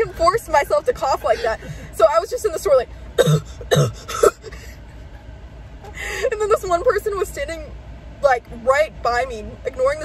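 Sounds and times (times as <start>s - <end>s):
woman fake coughing: 3.2s - 4.6s.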